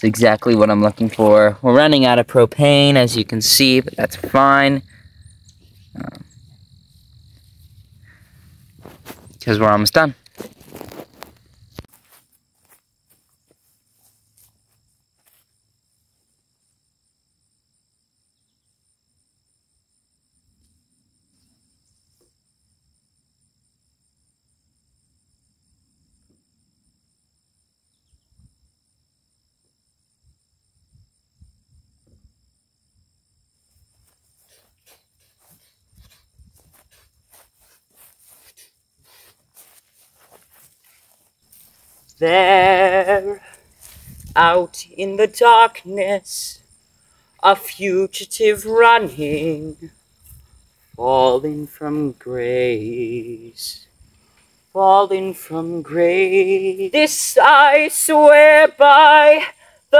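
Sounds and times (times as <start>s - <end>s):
footsteps on grass and dirt: 0.0s - 4.9s, 5.6s - 15.6s, 33.6s - 45.7s
high-pitched insect chorus: 0.0s - 59.9s.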